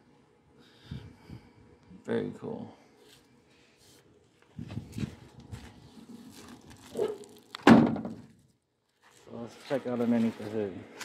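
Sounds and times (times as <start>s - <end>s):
shuffling and light knocks: 3.0s - 7.3s, 8.9s - 11.0s.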